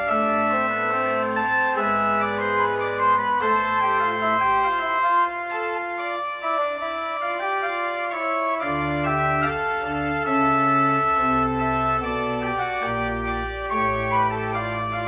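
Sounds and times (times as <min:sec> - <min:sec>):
church organ chords: 0:00.0 - 0:15.0.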